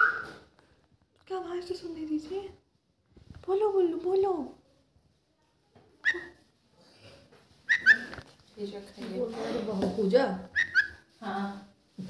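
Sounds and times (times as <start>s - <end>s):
bird chirping: 7.7s - 8.2s, 10.5s - 11.0s.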